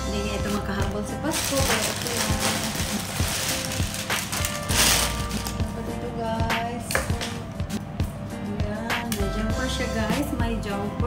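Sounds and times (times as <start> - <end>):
background music with beat: 0.0 - 11.0
plastic bag rustling: 0.3 - 5.8.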